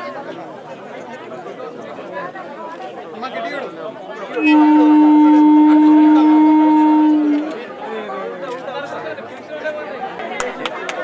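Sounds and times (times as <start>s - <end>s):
crowd chatter: 0.0s - 11.0s
low horn-like tone: 4.3s - 7.7s.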